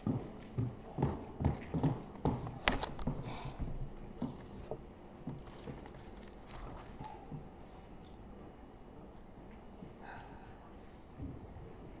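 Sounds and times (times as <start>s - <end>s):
footsteps on a stage: 0.0s - 6.1s.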